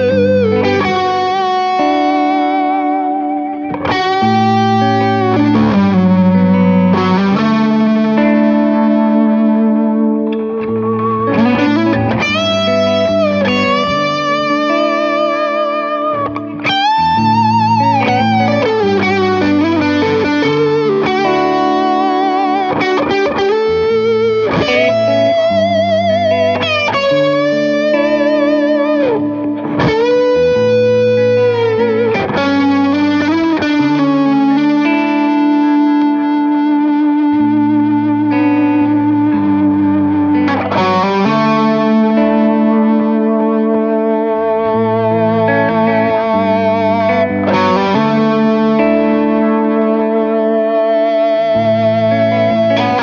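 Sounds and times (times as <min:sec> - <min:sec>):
low chordal backing: 0:00.0 - 0:53.0
overdriven electric guitar solo: 0:00.0 - 0:53.0.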